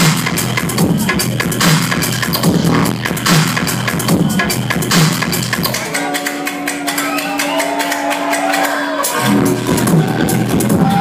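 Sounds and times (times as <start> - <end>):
dubstep over club sound system: 0.0 - 7.3, 9.0 - 11.0.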